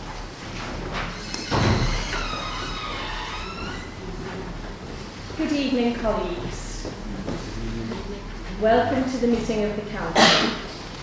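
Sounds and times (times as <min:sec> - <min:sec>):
people shuffling in seats: 0:00.0 - 0:11.0.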